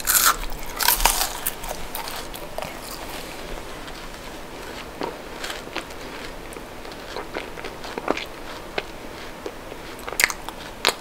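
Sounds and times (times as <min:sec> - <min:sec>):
sharp crunches: 0:00.0 - 0:03.2
chewing chocolate: 0:00.0 - 0:11.0.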